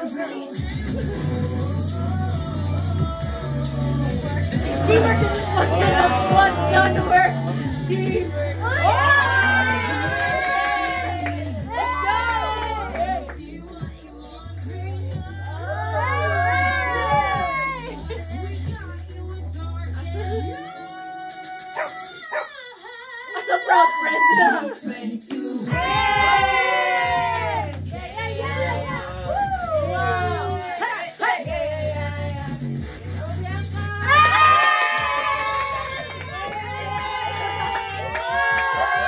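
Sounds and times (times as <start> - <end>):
music track with bass: 0.5 - 22.0, 25.5 - 39.0
women shrieking and laughing: 4.6 - 7.3, 23.4 - 24.8.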